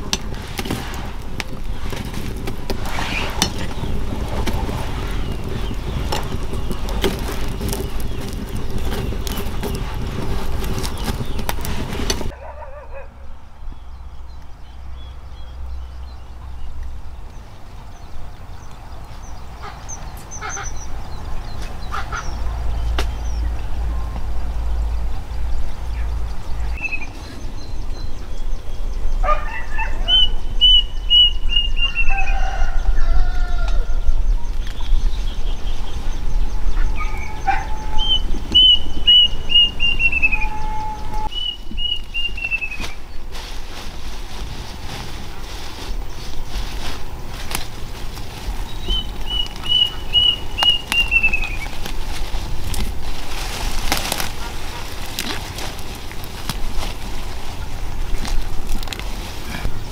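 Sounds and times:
lower bird calls: 1.5s - 43.5s, 45.4s - 59.9s
birds calling high notes: 34.9s - 43.0s, 48.2s - 52.2s.

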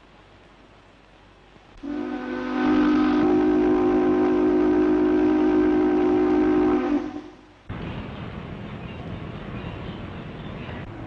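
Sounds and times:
steam whistle blast: 1.8s - 7.5s.

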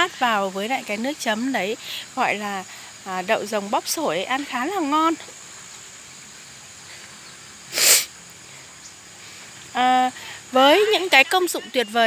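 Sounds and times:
faint high-pitched outdoor background: 0.0s - 12.0s.

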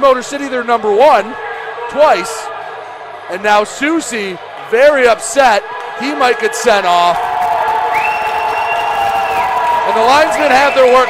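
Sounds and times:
crowd shouting and yelling: 0.0s - 11.0s.

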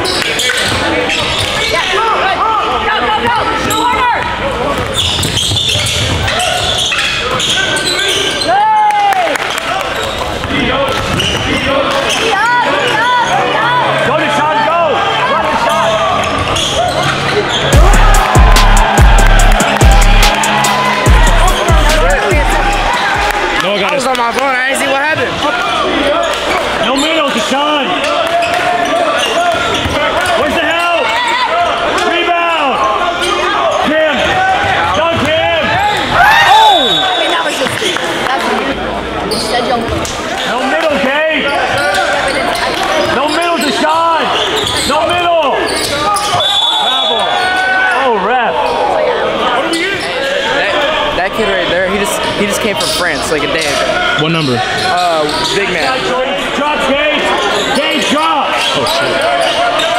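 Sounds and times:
sneakers squeaking: 0.0s - 2.3s, 3.2s - 8.6s, 9.4s - 14.0s, 15.2s - 18.4s, 25.1s - 31.7s, 32.7s - 38.4s, 39.2s - 40.6s, 41.5s - 56.1s, 57.2s - 59.9s
players calling out: 0.0s - 59.9s.

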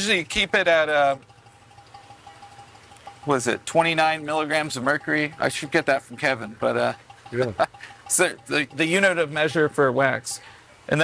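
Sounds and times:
faint machine hum with high tone: 0.0s - 11.0s.

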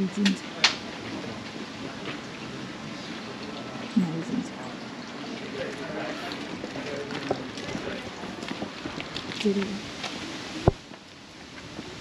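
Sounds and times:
person's voice: 0.0s - 0.4s, 4.0s - 4.6s, 9.4s - 9.8s.

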